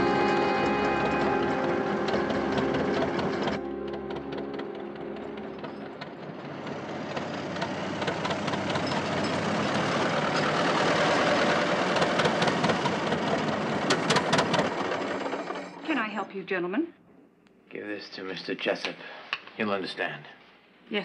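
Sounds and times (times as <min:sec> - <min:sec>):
truck engine running: 0:00.0 - 0:15.8.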